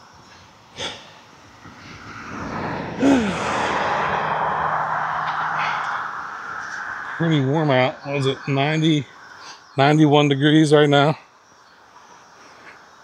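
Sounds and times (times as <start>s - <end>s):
road traffic tyre noise: 0.0s - 10.8s
vehicle passing by: 1.5s - 9.6s.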